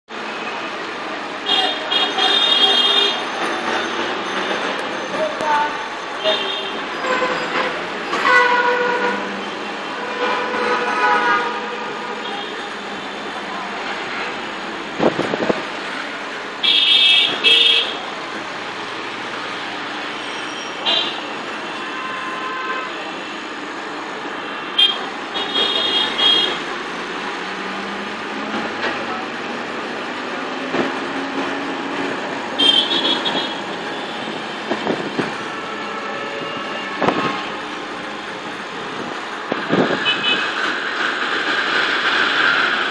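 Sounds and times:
engine and road noise: 0.1s - 42.9s
vehicle horns honking: 1.4s - 3.2s, 6.2s - 9.3s, 9.9s - 12.6s, 16.6s - 18.0s, 20.2s - 23.3s, 24.4s - 26.6s, 32.6s - 34.3s, 35.5s - 37.6s, 40.0s - 40.6s.

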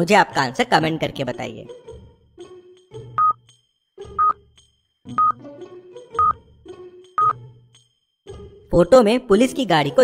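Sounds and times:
light background music: 0.0s - 10.0s
stopwatch beep ticks: 3.2s - 3.4s, 4.2s - 4.4s, 5.2s - 5.4s, 6.2s - 6.4s, 7.2s - 7.4s.

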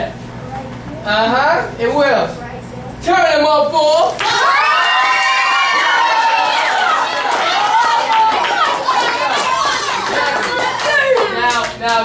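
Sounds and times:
children talking and calling out: 6.9s - 11.4s.

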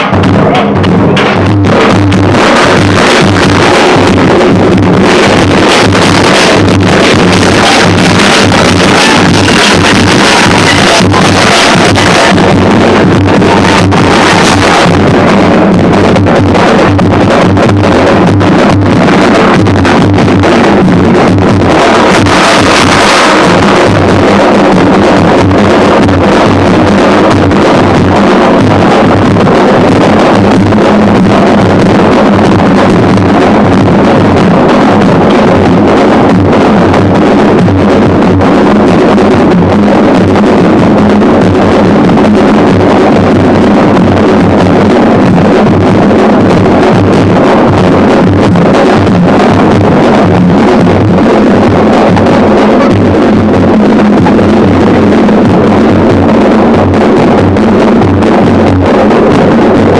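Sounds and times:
loud distorted music with drums: 0.0s - 59.9s.

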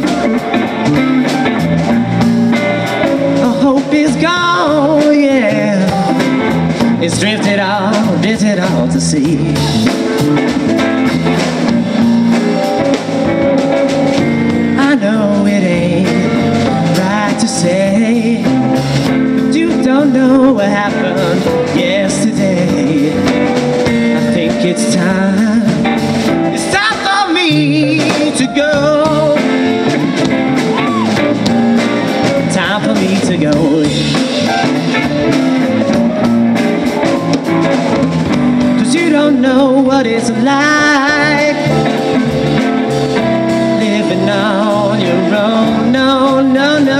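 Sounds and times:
live rock band playing: 0.0s - 46.9s.

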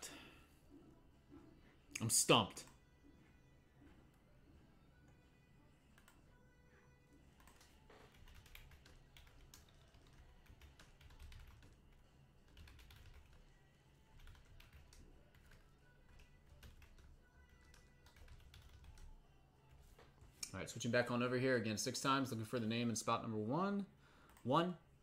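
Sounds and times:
typing on computer keyboard: 7.4s - 13.4s, 14.2s - 19.1s.

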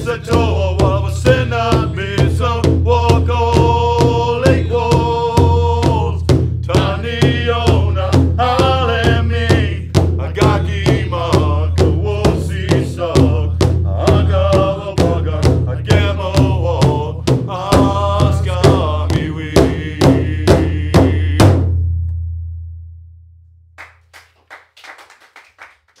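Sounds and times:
group singing: 0.0s - 21.6s
large drum beating: 0.0s - 22.5s.

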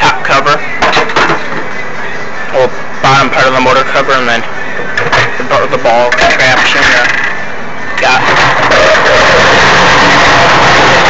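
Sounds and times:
vacuum motor whining: 8.0s - 11.0s.

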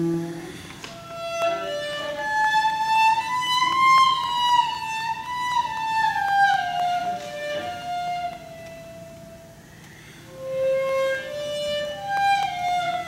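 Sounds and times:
solo cello melody: 0.0s - 9.6s, 10.3s - 13.0s.

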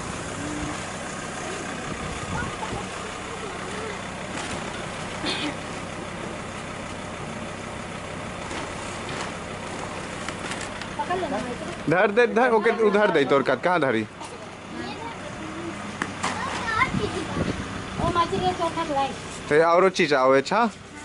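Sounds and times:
truck engine idling: 0.0s - 21.0s.

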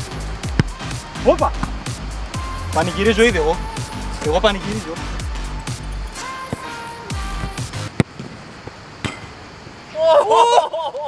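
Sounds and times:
background music: 0.0s - 8.0s
football being kicked: 0.4s - 1.8s.

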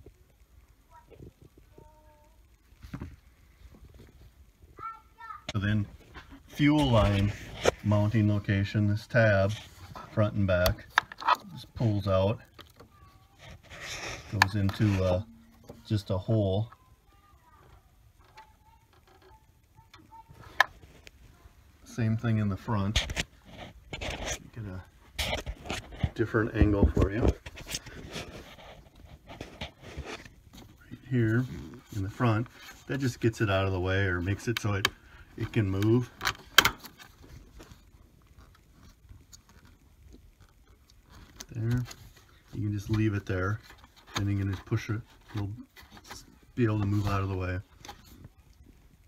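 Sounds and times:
faint rustling and rubbing: 0.0s - 49.0s
plastic parts squeaking: 9.7s - 16.8s.

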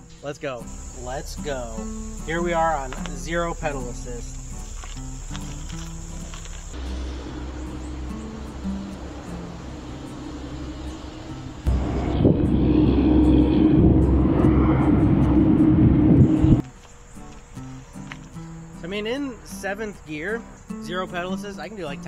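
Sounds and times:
wind buffeting microphone: 6.7s - 16.6s.

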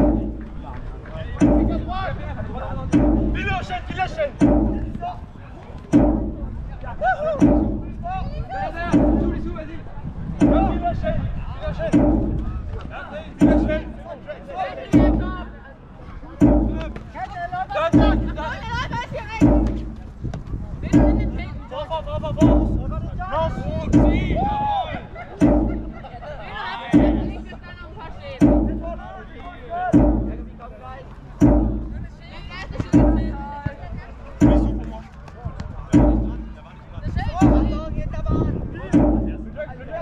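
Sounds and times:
drum beats: 0.0s - 6.7s, 7.3s - 15.7s, 16.4s - 33.8s, 34.4s - 35.2s, 35.8s - 38.2s, 38.8s - 39.8s.

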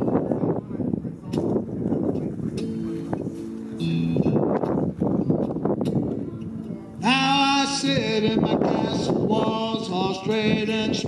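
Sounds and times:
acoustic guitar strumming: 1.7s - 11.0s.

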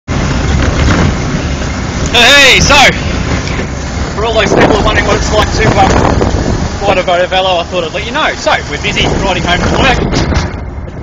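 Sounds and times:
drivetrain noise: 0.1s - 11.0s
wind noise: 0.1s - 11.0s.

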